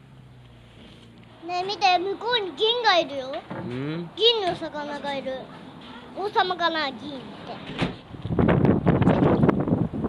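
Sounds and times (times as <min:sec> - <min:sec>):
wind buffeting microphone: 0:07.9 - 0:10.0.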